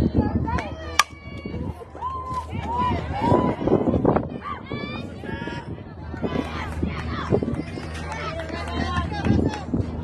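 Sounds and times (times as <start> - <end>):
bat striking ball: 1.0 - 1.2.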